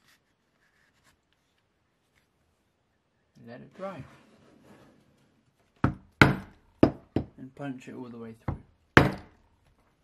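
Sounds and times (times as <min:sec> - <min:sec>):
mallet striking steel punch: 0:05.9 - 0:06.5, 0:09.0 - 0:09.3.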